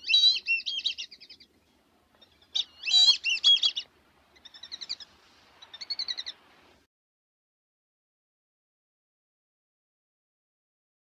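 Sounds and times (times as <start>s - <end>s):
bird warbling: 0.0s - 1.5s, 2.2s - 6.4s.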